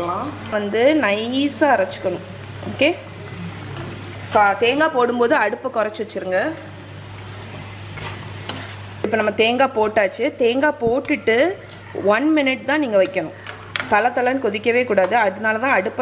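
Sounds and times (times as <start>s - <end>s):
ladle stirring and scraping pot: 7.2s - 14.0s.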